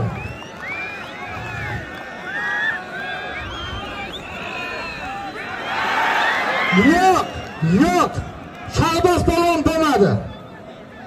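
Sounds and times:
crowd cheering: 0.0s - 11.0s
crowd shouting: 0.0s - 11.0s.

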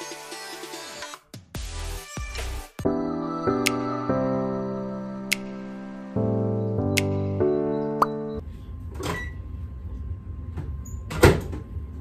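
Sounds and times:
background music: 0.0s - 8.4s.

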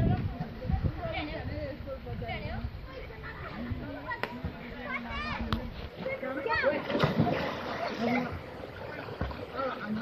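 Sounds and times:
body splashing into water: 6.7s - 9.7s.

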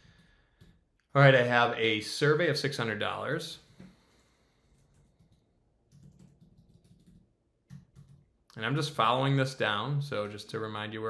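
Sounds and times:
keyboard typing: 4.7s - 8.4s.

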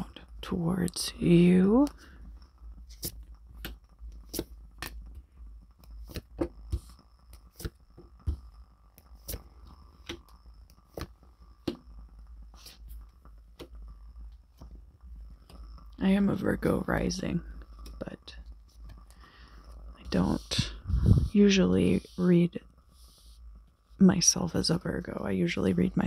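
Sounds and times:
steady low hum: 0.0s - 26.0s
cards tapping and flicking: 2.8s - 13.9s.

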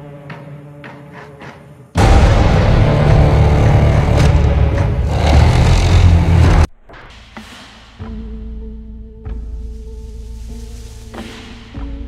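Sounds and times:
deep rumbling boom: 2.0s - 6.7s.

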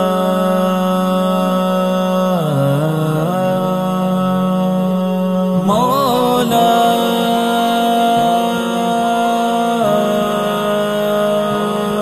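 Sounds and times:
low drone: 0.0s - 12.0s
wordless chant-like singing: 0.0s - 12.0s.

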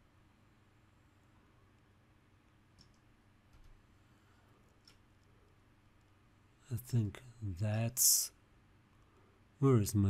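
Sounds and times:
computer mouse clicks: 2.7s - 3.8s.

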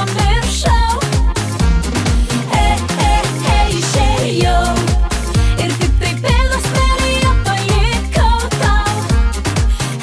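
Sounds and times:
woman singing: 0.0s - 1.4s, 2.3s - 9.2s
pop song with dance beat: 0.0s - 10.0s.

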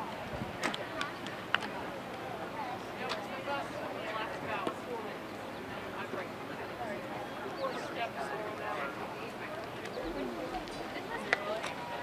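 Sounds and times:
outdoor ambience: 0.0s - 12.0s
indistinct voices talking: 0.8s - 12.0s.

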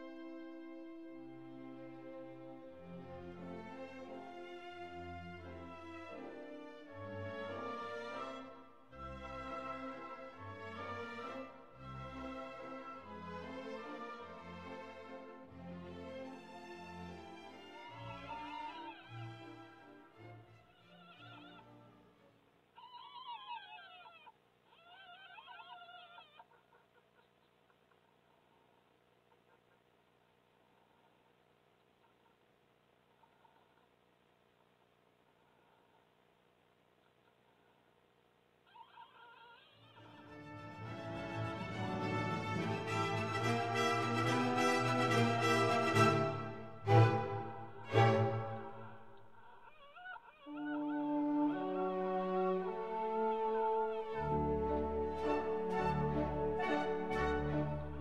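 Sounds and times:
background music: 0.0s - 22.5s, 40.0s - 49.4s, 50.8s - 58.0s
fox cubs whimpering: 17.7s - 19.8s, 20.6s - 21.8s, 22.8s - 27.9s, 38.6s - 40.3s, 48.8s - 51.9s, 52.9s - 54.9s.

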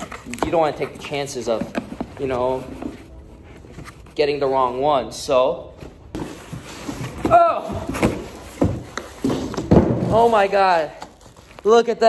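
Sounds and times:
cardboard knocks and rustles: 6.1s - 10.3s
plastic wrap rustling: 6.3s - 12.0s.

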